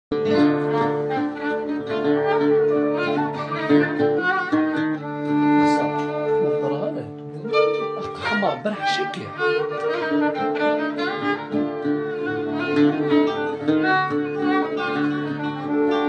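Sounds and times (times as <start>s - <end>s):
bowed string melody: 0.1s - 16.0s.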